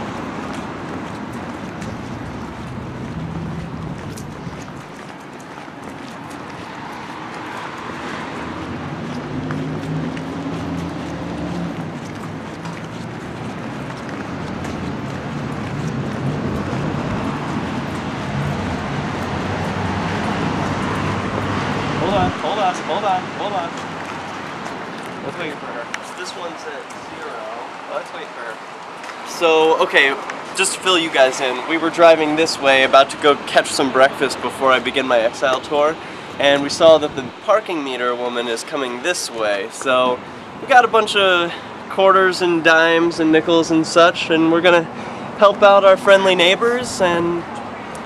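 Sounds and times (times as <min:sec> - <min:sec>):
cars driving past: 0:00.0 - 0:48.0.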